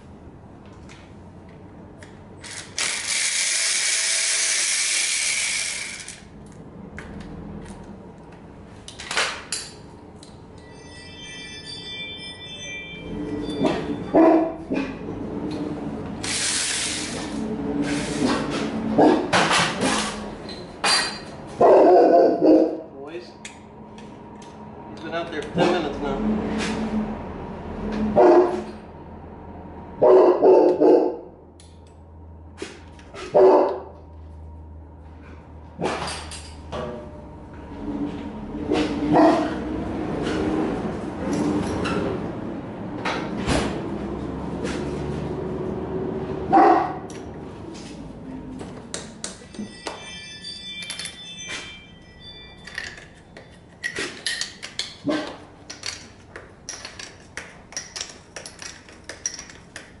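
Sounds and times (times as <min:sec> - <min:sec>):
hand tools clicking and clinking: 0:02.0 - 0:06.6, 0:48.7 - 1:00.0
dog barking: 0:14.2 - 0:14.8, 0:19.0 - 0:19.3, 0:21.6 - 0:22.8, 0:28.2 - 0:28.7, 0:30.0 - 0:31.2, 0:33.3 - 0:33.9, 0:39.1 - 0:39.6, 0:46.5 - 0:47.0.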